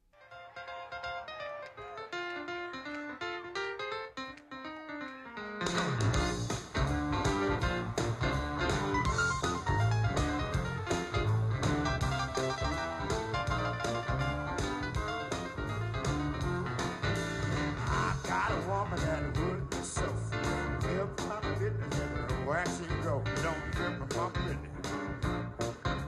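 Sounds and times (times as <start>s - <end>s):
blues band playing: 0.7s - 26.0s.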